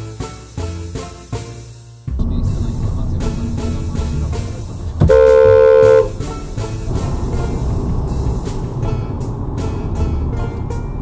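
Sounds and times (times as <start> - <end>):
background music with steady beat: 0.0 - 11.0
car horn blast: 5.0 - 6.4.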